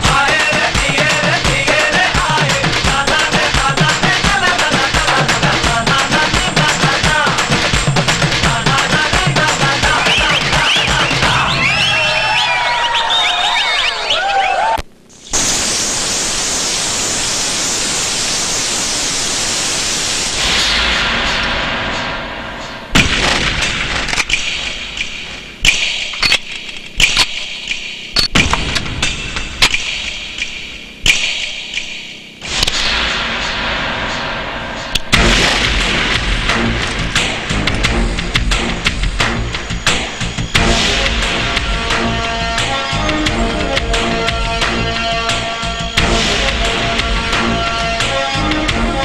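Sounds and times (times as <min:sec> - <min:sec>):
sharp percussive hits: 0:00.0 - 0:11.4, 0:20.4 - 0:48.9
shower spraying water: 0:15.2 - 0:20.6
tense film music: 0:28.5 - 0:49.0.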